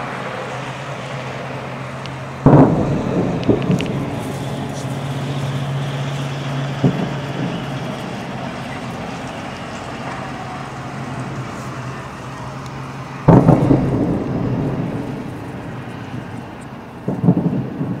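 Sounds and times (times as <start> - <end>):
distant fireworks booming: 2.4 - 9.8, 13.2 - 18.0
quick fireworks bangs: 2.5 - 9.2, 13.3 - 18.0.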